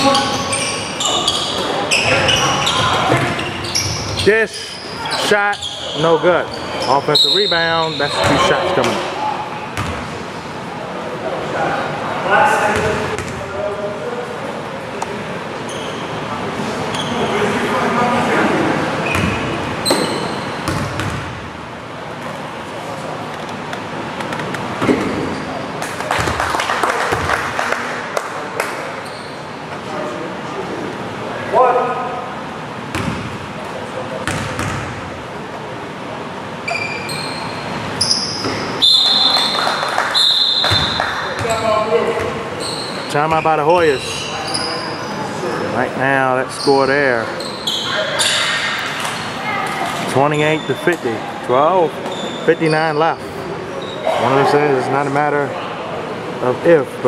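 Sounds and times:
sneakers squeaking: 0.0 - 10.5, 12.7 - 13.5, 15.6 - 17.6, 18.9 - 21.6, 22.2 - 27.4, 28.7 - 29.8, 32.8 - 35.2, 36.4 - 45.6, 46.5 - 51.3, 51.9 - 54.5
voices echoing in gym: 0.0 - 57.0
basketball bouncing on wooden floor: 20.6 - 21.3, 34.3 - 34.9.

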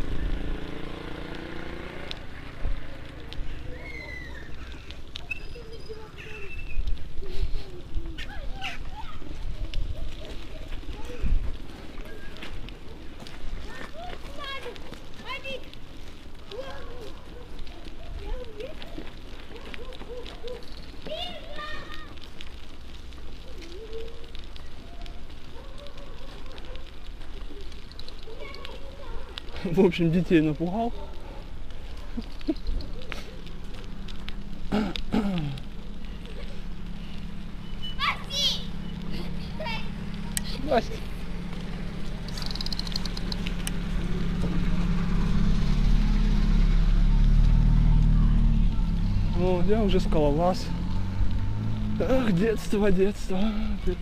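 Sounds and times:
bicycle rolling on wet road: 0.0 - 54.0
distant voices: 0.0 - 54.0
bike clicks and rattles: 6.7 - 37.4, 40.0 - 44.6.

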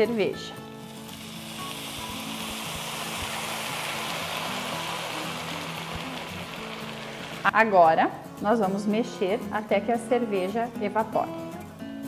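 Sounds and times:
beer sizzling in a hot pan: 0.0 - 7.7.

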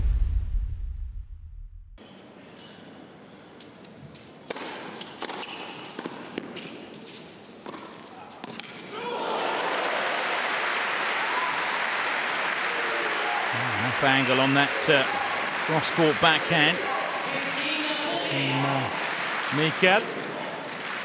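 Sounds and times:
tennis ball bouncing on court: 4.4 - 6.8, 7.6 - 8.9
crowd cheering and applause: 8.9 - 21.0.

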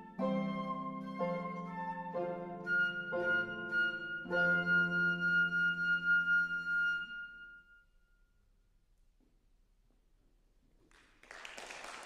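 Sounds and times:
flute note with vibrato: 0.0 - 7.8.

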